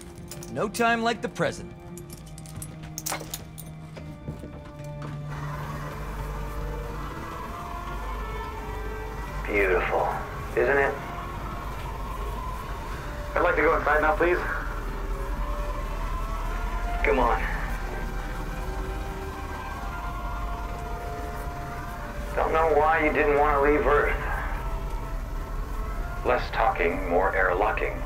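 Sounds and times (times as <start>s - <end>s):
long held music tones: 1.3s - 28.0s
low rumble: 1.9s - 28.0s
voices: 5.3s - 28.0s.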